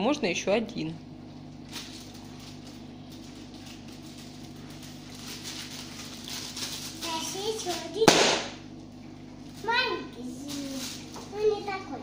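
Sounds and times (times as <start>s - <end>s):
steady low hum: 0.0s - 12.0s
plastic sweet packets crinkling: 1.6s - 8.1s, 8.7s - 11.7s.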